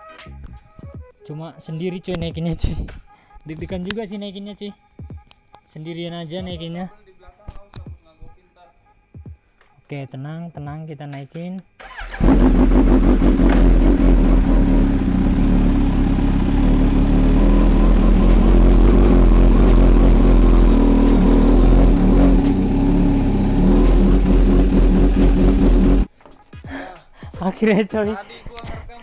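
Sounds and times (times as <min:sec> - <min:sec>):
motorcycle engine running loudly: 0:12.2 - 0:26.1.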